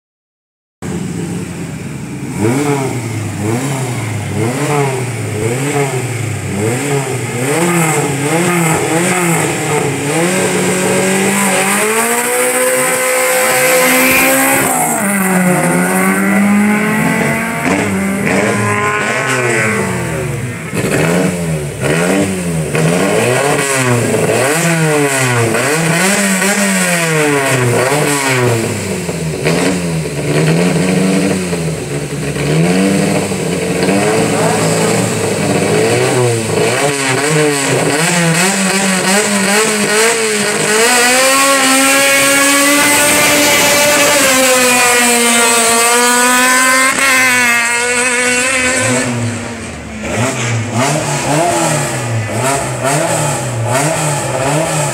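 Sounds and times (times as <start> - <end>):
racing car engine revving: 0.8 - 54.9
car passing at high revs: 0.9 - 54.9.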